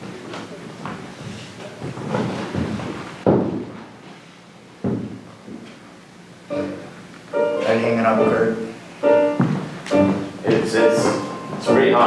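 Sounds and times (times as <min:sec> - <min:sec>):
sudden thumps with room echo: 0:01.8 - 0:04.0, 0:04.8 - 0:05.6.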